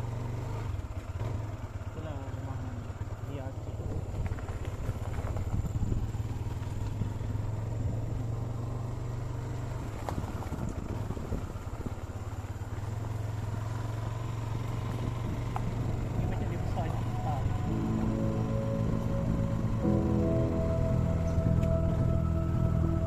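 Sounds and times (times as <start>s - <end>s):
motorcycle engine running: 0.0s - 23.0s
road rumble: 0.0s - 23.0s
wind: 0.0s - 23.0s.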